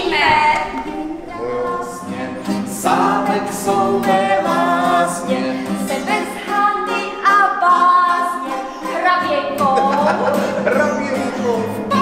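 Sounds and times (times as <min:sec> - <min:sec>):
acoustic guitar: 0:00.0 - 0:12.0
people singing together: 0:00.0 - 0:12.0.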